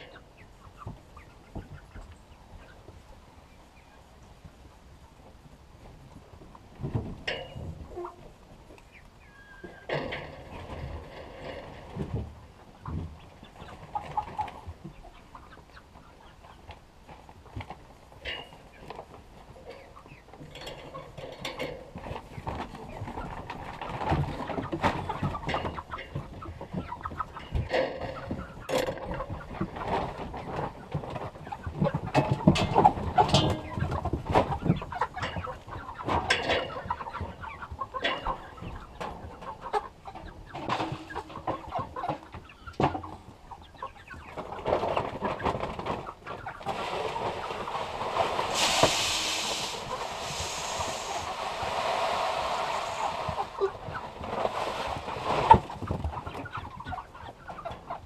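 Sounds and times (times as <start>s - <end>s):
chickens clucking: 0.0s - 58.0s
steady hiss: 48.1s - 55.5s.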